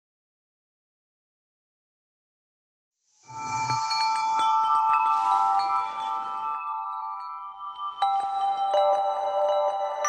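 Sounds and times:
bell-like chime jingle: 0:03.3 - 0:10.0.

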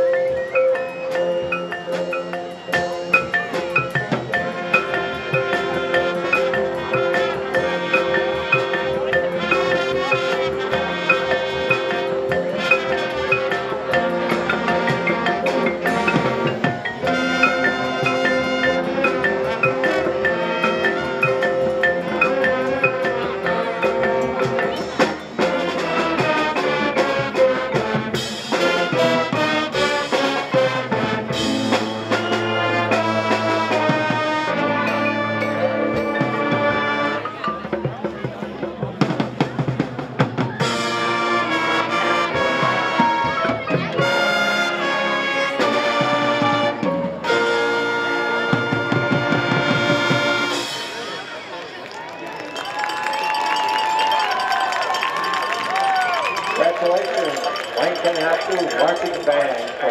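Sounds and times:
drums: 0:00.0 - 0:59.7
marching band playing: 0:00.0 - 0:59.9
crowd cheering: 0:49.1 - 0:59.9.

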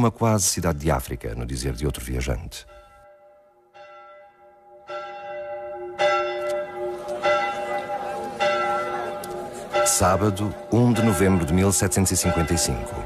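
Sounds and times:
church bell tolling: 0:01.4 - 0:13.0.

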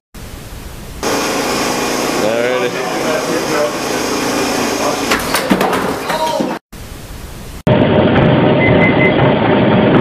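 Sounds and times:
loud steady noise: 0:00.2 - 0:05.1, 0:06.8 - 0:10.0.

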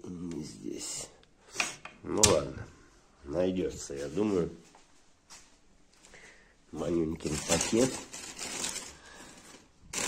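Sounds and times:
plastic bags rustling: 0:06.8 - 0:10.0.

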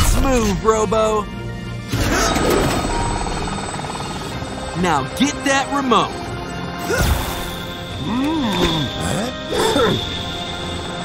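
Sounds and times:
background music: 0:00.0 - 0:11.0
cartoon helicopter rotor whir: 0:02.2 - 0:06.2.

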